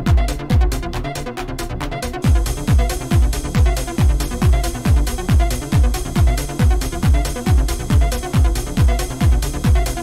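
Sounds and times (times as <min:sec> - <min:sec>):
kick drum: 0:00.0 - 0:01.1, 0:02.1 - 0:10.0
hi-hats ticking: 0:02.2 - 0:10.0.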